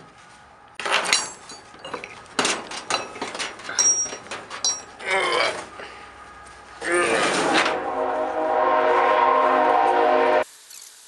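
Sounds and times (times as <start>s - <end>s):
padlock clinking on metal hasp: 2.8s - 5.0s.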